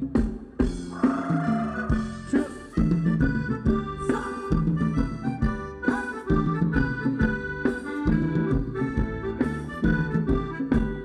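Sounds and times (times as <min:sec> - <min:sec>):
live band dance music: 0:00.0 - 0:11.0
steady drum beat: 0:00.0 - 0:11.0.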